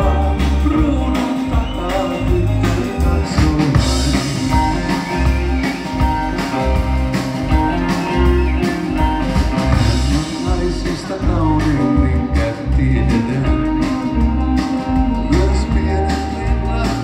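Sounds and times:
man singing: 0.0s - 6.5s, 9.7s - 17.0s
drum kit: 0.0s - 17.0s
electric bass: 0.0s - 17.0s
electric guitar: 0.0s - 17.0s
keyboard: 0.0s - 17.0s.

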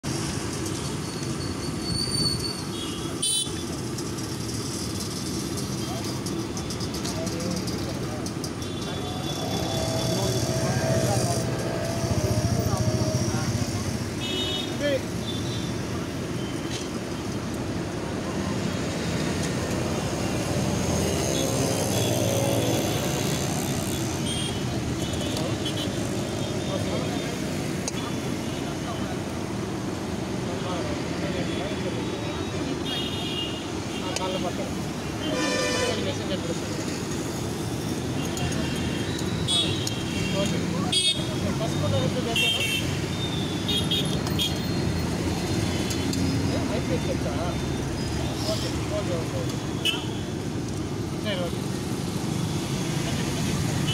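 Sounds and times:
traffic noise: 0.0s - 53.9s
background voices: 9.0s - 14.0s
vehicle horn toots: 35.2s - 36.0s.

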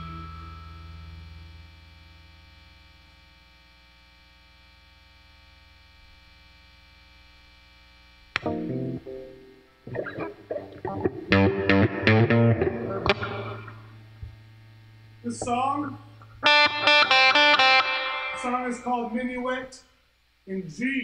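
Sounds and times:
electric guitar chords and notes: 0.0s - 2.5s, 8.3s - 19.1s
amplifier hum: 0.0s - 21.0s.

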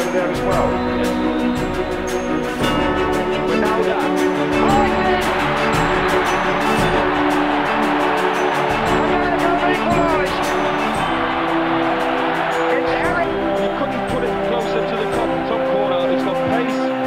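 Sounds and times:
stadium crowd roaring and cheering: 0.0s - 17.0s.

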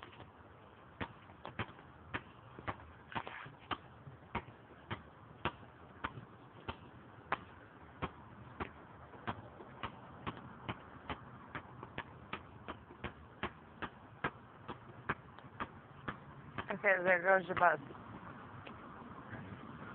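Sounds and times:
basketball bouncing on asphalt: 0.0s - 19.6s.

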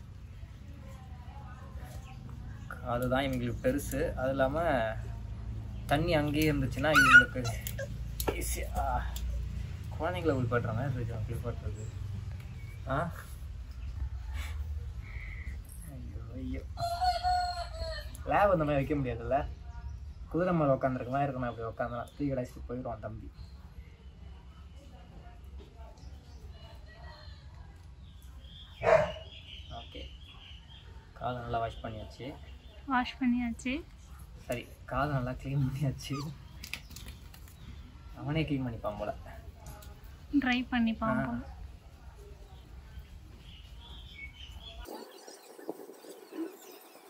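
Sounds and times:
puppy whining: 6.8s - 8.4s, 35.9s - 36.8s
puppy barking: 6.9s - 8.0s, 28.8s - 29.3s.

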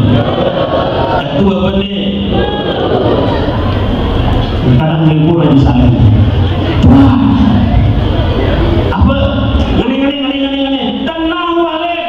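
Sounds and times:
crowd noise: 0.0s - 12.0s
man's voice over pa system: 1.2s - 2.5s, 4.6s - 8.0s, 8.9s - 12.0s.

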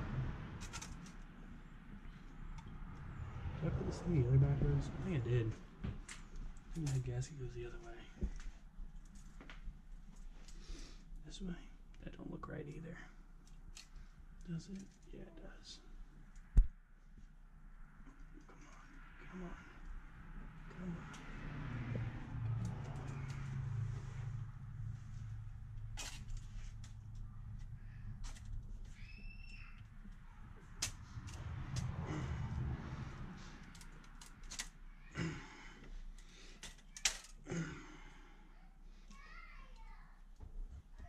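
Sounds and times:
low hum: 15.7s - 34.8s.

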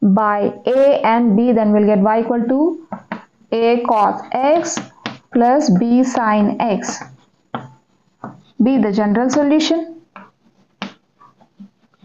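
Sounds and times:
chalk scratching on blackboard: 6.7s - 8.6s, 10.2s - 12.0s.

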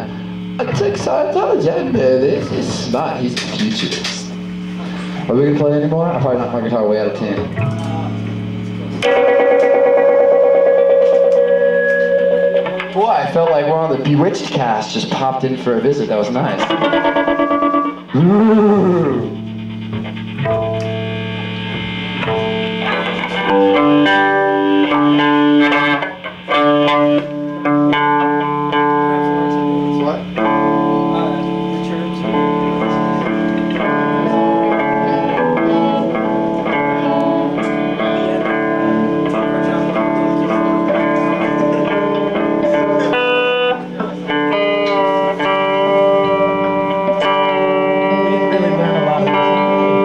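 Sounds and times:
electric guitar chords and notes: 0.0s - 50.0s.

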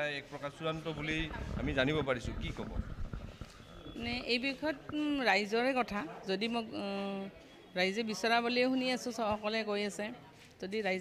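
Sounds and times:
low rumble: 1.0s - 4.3s
woman talking into microphone: 3.8s - 11.0s.

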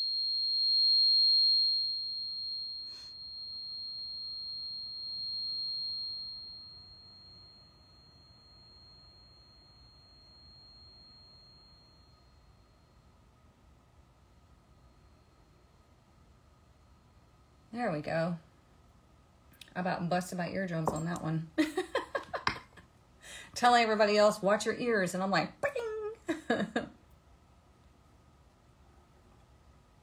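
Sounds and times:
tuning fork ringing: 0.0s - 22.6s.

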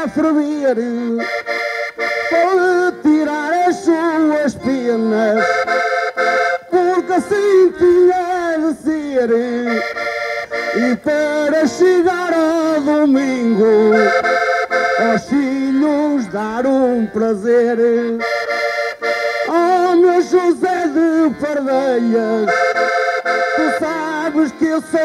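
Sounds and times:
man singing: 0.0s - 1.4s, 2.2s - 5.8s, 6.6s - 18.4s, 19.4s - 22.9s, 23.5s - 25.0s
accordion playing held chords: 0.0s - 25.0s.

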